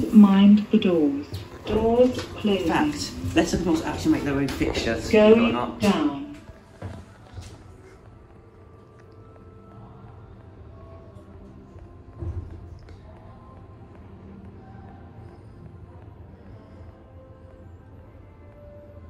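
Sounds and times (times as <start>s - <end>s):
faint background music: 0.0s - 19.0s.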